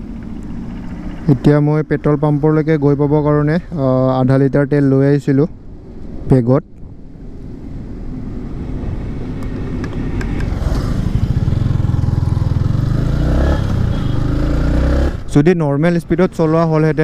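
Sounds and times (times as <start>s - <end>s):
motorcycle engine running: 0.0s - 2.6s, 10.2s - 15.3s.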